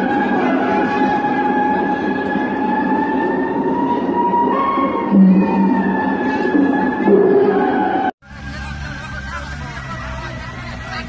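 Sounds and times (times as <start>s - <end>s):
long held note with overtones: 0.0s - 8.1s.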